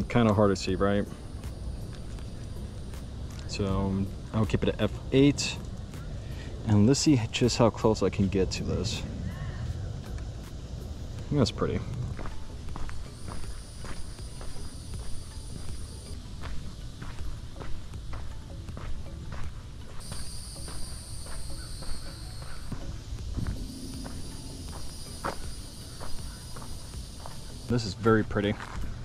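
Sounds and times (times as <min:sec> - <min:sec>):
footsteps on dirt path: 0:00.0 - 0:04.4, 0:09.8 - 0:29.0
steady high buzz: 0:00.0 - 0:29.0.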